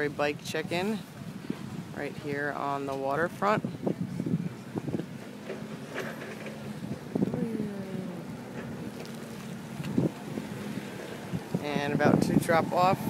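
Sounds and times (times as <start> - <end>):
wind buffeting microphone: 0.0 - 13.0
faint voices: 2.2 - 13.0.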